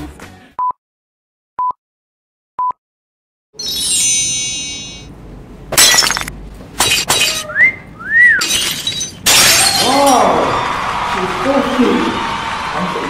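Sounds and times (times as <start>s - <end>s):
breaking glass crashes: 5.7s - 7.5s, 8.4s - 10.4s
rising and falling whistles: 7.5s - 8.5s.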